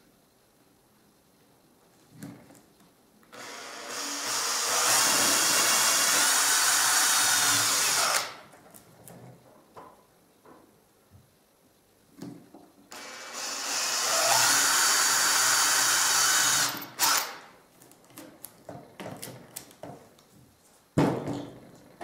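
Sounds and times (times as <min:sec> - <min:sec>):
cordless drill boring through plastic: 0:03.3 - 0:08.4, 0:12.9 - 0:17.5.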